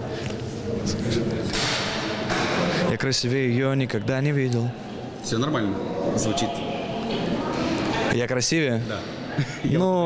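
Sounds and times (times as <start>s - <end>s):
people talking in a large room: 0.0s - 10.0s.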